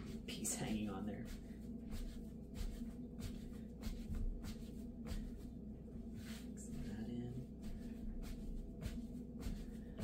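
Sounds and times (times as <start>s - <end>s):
dough being kneaded by hand: 0.0s - 10.0s
steady low hum: 0.0s - 10.0s.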